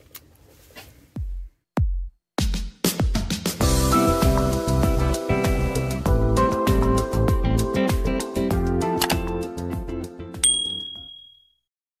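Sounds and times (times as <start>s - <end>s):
outro music: 3.1s - 10.4s
notification bell ding: 10.4s - 11.5s.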